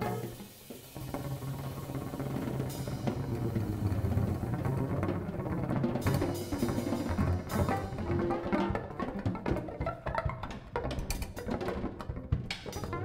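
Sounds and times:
dense continuous drumming: 0.0s - 13.0s
jazz ensemble music: 0.0s - 13.0s.

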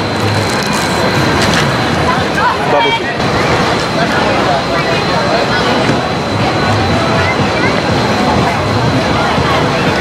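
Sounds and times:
crowd noise: 0.0s - 10.0s
street traffic: 0.0s - 10.0s.

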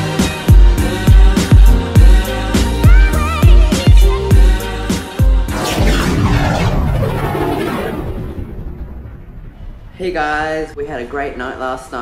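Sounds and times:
deep boom: 5.5s - 10.7s.

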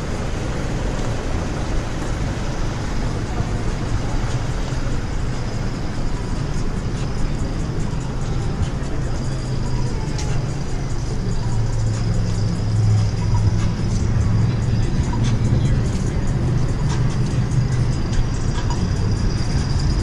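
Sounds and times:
faint voices: 0.0s - 20.0s
vehicle engine hum: 0.0s - 20.0s
music: 0.3s - 20.0s.

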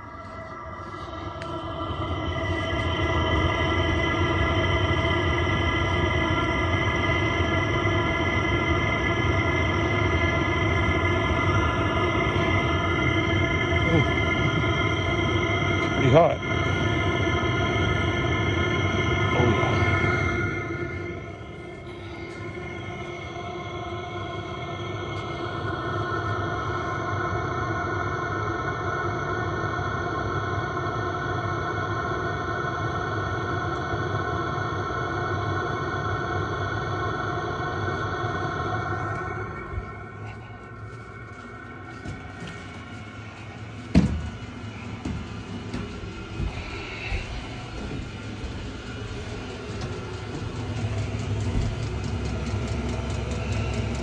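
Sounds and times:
low rumble: 0.0s - 27.6s, 35.8s - 54.0s
machine hum with high whine: 0.0s - 54.0s.

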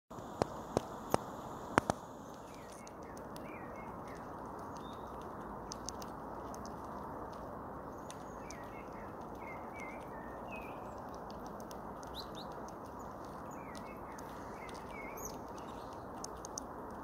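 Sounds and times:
squirrel nibbling clicks: 0.2s - 17.0s.

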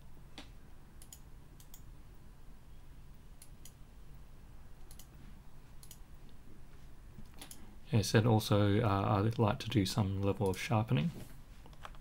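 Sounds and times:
low room hum: 0.0s - 12.0s
computer mouse clicks: 0.4s - 1.9s, 3.4s - 3.8s, 4.8s - 5.2s, 5.8s - 6.4s, 7.2s - 7.7s.

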